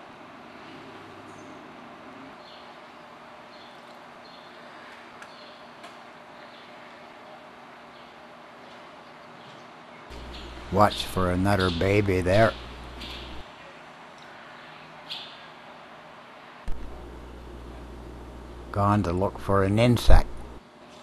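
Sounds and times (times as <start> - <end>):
faint hum: 0.0 - 20.8
swallows chirping: 2.4 - 7.1, 7.8 - 13.4.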